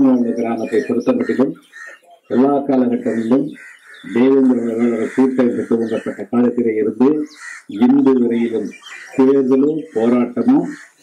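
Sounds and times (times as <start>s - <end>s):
man speaking into a microphone: 0.0s - 1.6s, 2.2s - 11.0s.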